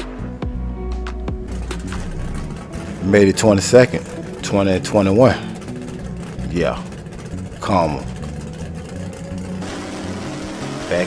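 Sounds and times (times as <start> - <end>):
car engine lumpy idle: 0.0 - 11.0.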